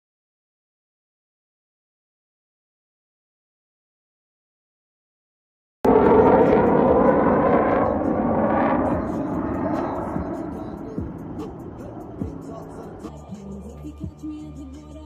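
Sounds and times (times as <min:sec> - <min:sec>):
fighter jet passing overhead: 0:05.8 - 0:13.8.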